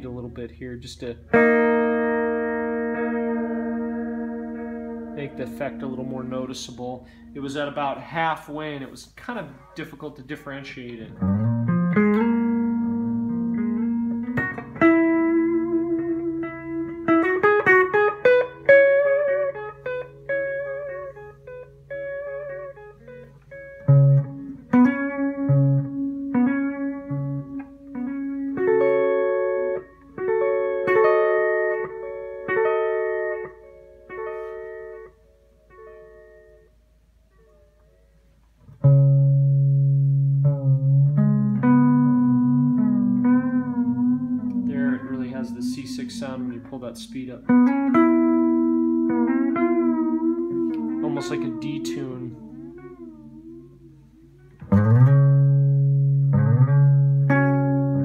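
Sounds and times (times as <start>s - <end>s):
electric guitar with echoing delay: 1.2s - 8.0s, 11.1s - 38.2s, 38.8s - 58.0s.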